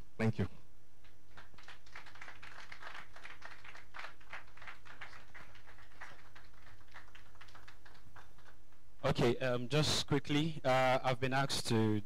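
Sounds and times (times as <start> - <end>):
audience applauding: 1.3 - 8.6.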